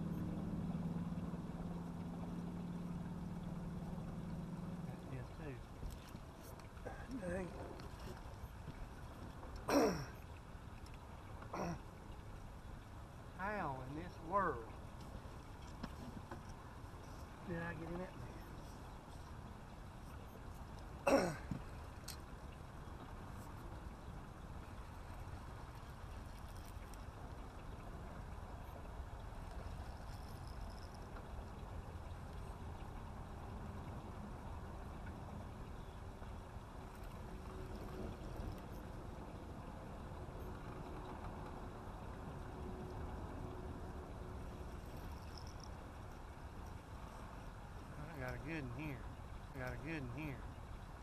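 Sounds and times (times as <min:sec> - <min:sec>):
water around boat: 0:00.0 - 0:51.0
wind: 0:00.0 - 0:51.0.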